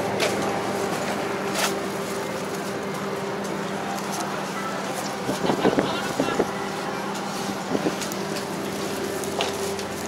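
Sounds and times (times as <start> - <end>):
low mechanical hum: 0.0 - 10.0
faint background voices: 3.5 - 8.4.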